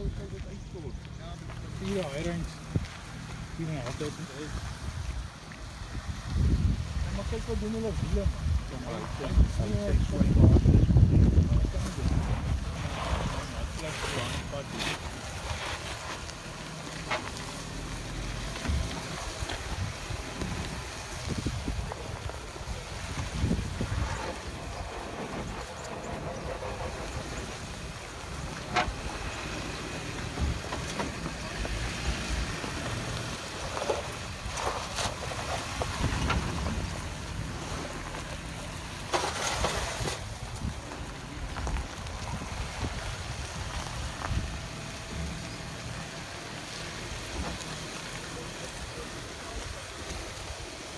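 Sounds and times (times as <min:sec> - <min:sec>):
vehicle engine running: 0:00.0 - 0:50.9
wind buffeting microphone: 0:04.4 - 0:15.6, 0:17.7 - 0:50.9.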